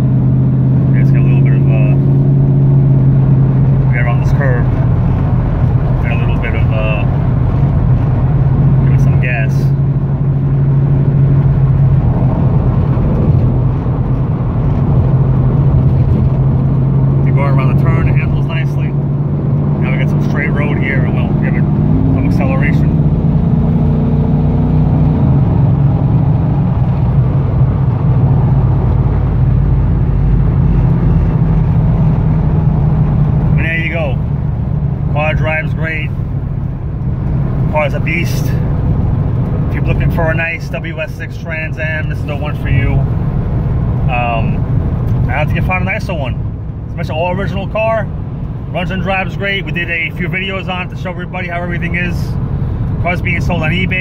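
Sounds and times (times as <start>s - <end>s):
car engine drone: 0.0s - 54.0s
road noise: 0.0s - 54.0s.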